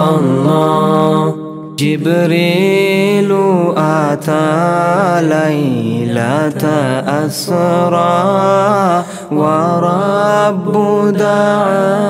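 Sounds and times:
devotional song with held notes: 0.0 - 12.0.

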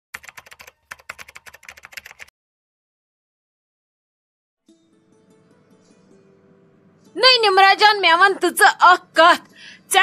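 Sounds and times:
keyboard typing clicks: 0.2 - 2.3.

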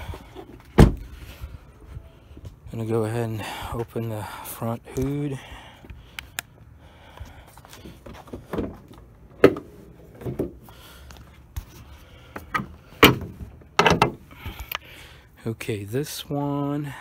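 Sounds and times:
car hood latch clicks and clunks: 12.5 - 14.2.

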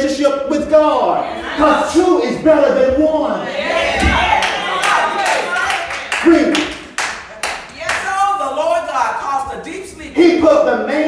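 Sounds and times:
sharp hand claps: 4.4 - 8.2.

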